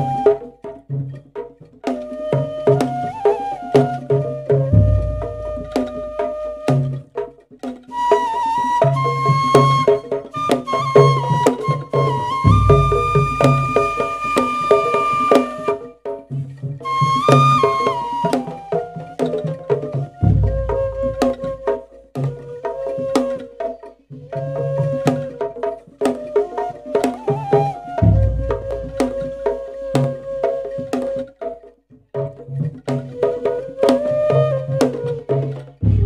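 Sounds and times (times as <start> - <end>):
bamboo flute long high note: 0.0 - 0.7, 1.9 - 7.2, 7.9 - 16.0, 16.8 - 31.4, 33.2 - 36.0
hand drum strokes: 0.0 - 36.0.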